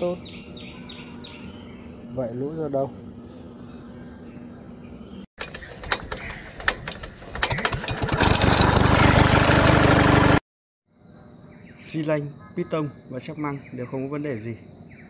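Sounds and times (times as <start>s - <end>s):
engine starting and running: 5.4s - 10.4s.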